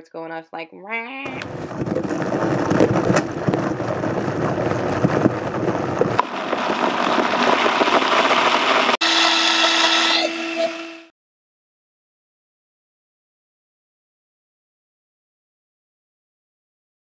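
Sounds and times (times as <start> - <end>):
blender running: 5.4 - 11.1.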